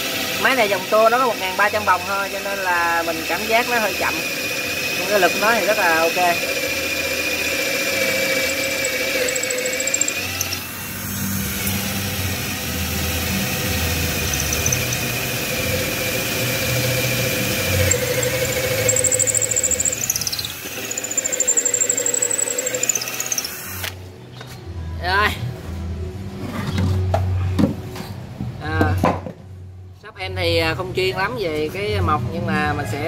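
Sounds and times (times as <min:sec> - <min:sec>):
cordless drill boring into wood: 0:01.6 - 0:24.0
high squeal: 0:08.3 - 0:11.3, 0:14.1 - 0:15.7, 0:17.6 - 0:23.5.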